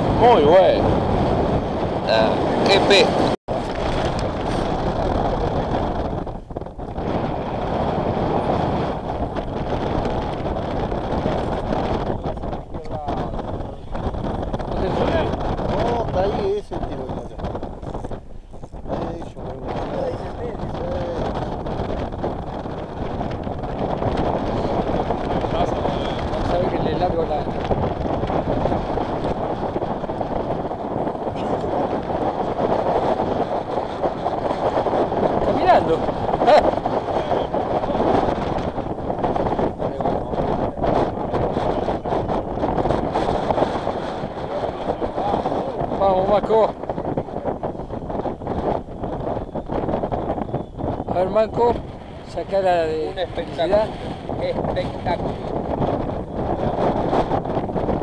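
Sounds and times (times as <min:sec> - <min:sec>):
wind rumble on microphone: 0:00.0 - 0:58.0
muffled voices talking: 0:12.2 - 0:14.0, 0:14.7 - 0:18.1, 0:18.9 - 0:21.3, 0:25.4 - 0:27.6, 0:39.7 - 0:42.0, 0:44.3 - 0:47.7, 0:51.1 - 0:55.5.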